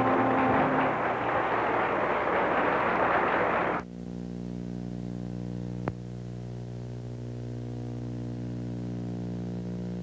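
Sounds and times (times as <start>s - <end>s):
song: 0.0s - 2.3s
audience applauding: 0.0s - 3.8s.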